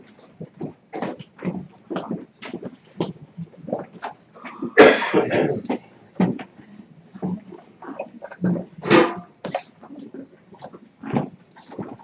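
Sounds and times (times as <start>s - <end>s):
noisy burst: 4.4s - 7.4s.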